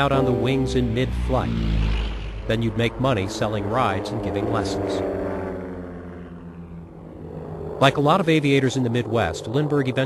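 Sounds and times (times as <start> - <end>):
propeller airplane engine droning: 0.0 - 10.0.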